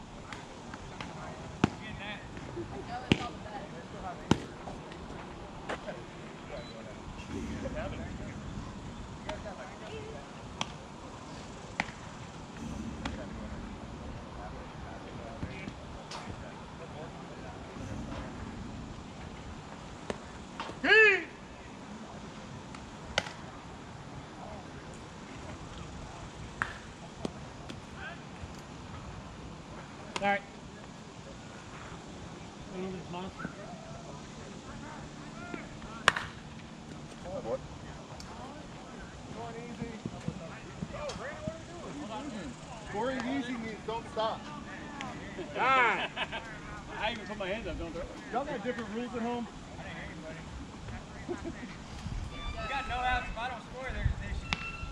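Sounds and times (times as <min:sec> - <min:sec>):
faint distant voices: 0:00.0 - 0:54.9
steady low background: 0:06.4 - 0:23.0
softball bat hitting ball: 0:36.0 - 0:36.3.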